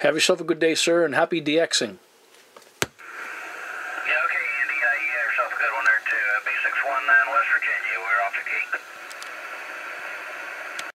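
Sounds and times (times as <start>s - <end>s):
radio static hiss: 3.0s - 11.0s.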